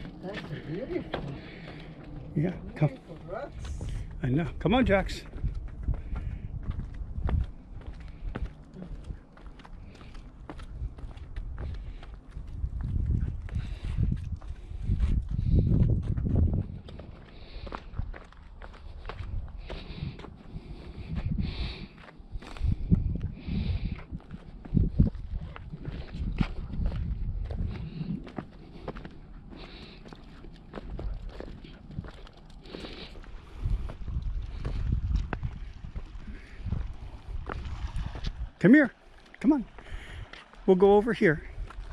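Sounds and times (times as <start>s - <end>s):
low rumbling microphone buffets: 0.0s - 41.9s
footsteps on rock: 5.2s - 21.0s, 21.9s - 38.5s.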